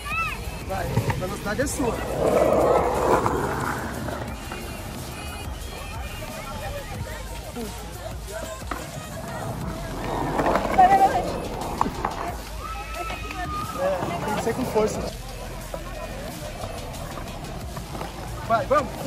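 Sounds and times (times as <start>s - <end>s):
background music: 0.0s - 19.0s
skateboard wheels rolling on concrete: 0.0s - 19.0s
voices: 0.0s - 19.0s.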